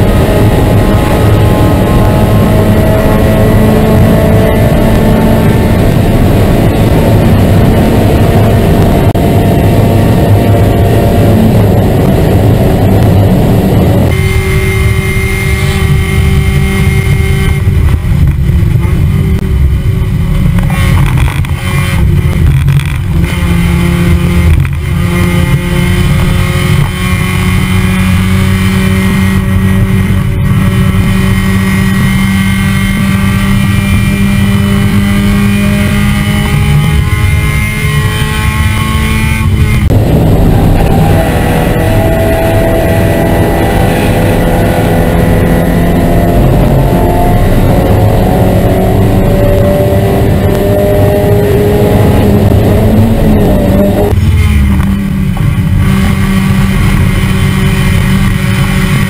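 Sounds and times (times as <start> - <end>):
race car engine under throttle: 0.0 - 59.0
road noise: 0.0 - 59.0
wind noise: 0.0 - 59.0.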